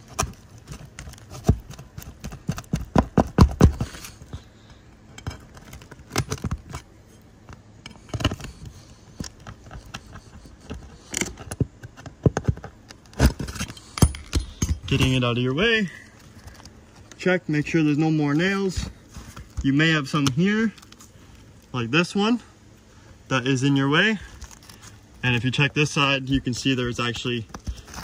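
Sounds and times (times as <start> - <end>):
pry bar scraping on shingles: 0.0 - 21.7, 24.1 - 28.0.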